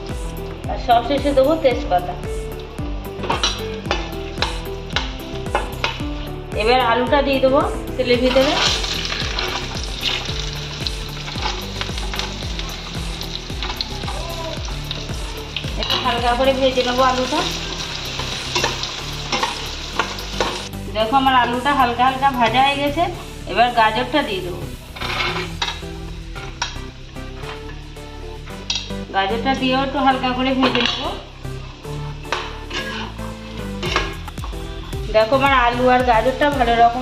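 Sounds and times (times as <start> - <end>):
background music: 0.0 - 37.0
potatoes sizzling in hot oil: 2.1 - 6.0, 8.2 - 37.0
steel spatula scraping: 17.1 - 20.6, 24.8 - 26.8, 31.9 - 34.3
spatula stirring against pan: 31.9 - 34.6.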